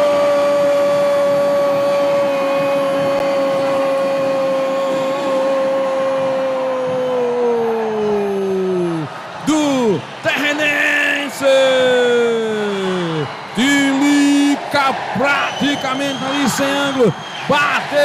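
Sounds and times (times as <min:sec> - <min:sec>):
commentator shouting: 0:00.0 - 0:07.3, 0:08.9 - 0:18.0
crowd noise: 0:00.0 - 0:18.0.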